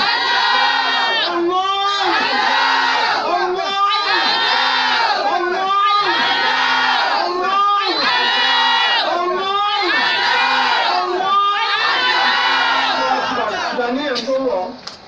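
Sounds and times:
crowd chanting: 0.0 - 13.9.

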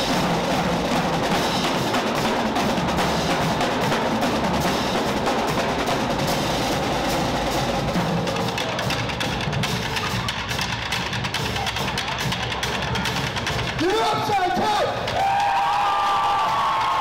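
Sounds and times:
drumline playing a fast cadence: 0.0 - 17.0
people shouting and cheering: 7.0 - 17.0.

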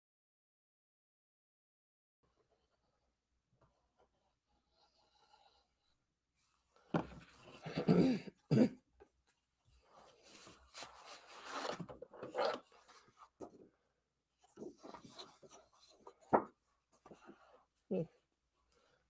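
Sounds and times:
woman coughing: 7.6 - 8.8
paper rustling: 9.9 - 13.6.

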